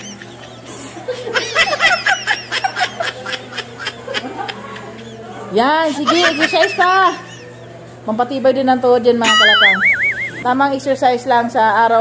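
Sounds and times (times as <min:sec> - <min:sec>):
women laughing: 0:00.0 - 0:08.0.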